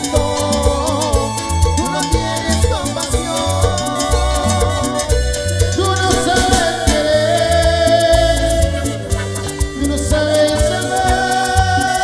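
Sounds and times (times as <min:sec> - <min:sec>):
salsa band playing: 0:00.0 - 0:12.0.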